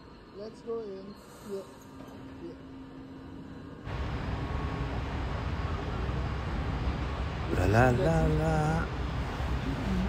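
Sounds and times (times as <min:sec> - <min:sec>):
faint platform ambience: 0:00.0 - 0:10.0
train rumble and hiss: 0:03.8 - 0:10.0.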